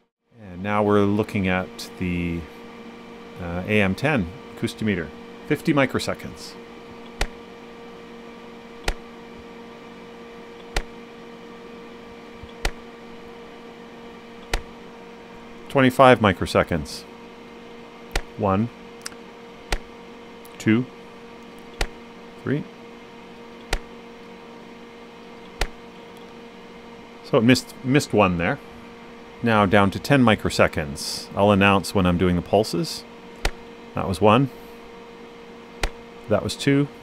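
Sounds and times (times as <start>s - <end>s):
steady hum: 0.0s - 37.0s
meter sharp clicks: 7.0s - 7.5s, 8.8s - 9.1s, 10.6s - 11.0s, 12.4s - 12.9s, 14.4s - 14.8s, 18.0s - 18.4s, 19.0s - 20.6s, 21.4s - 22.1s, 23.6s - 24.3s, 33.3s - 33.6s, 35.8s - 36.3s
meter sharp click: 8.8s - 9.1s, 18.1s - 18.4s.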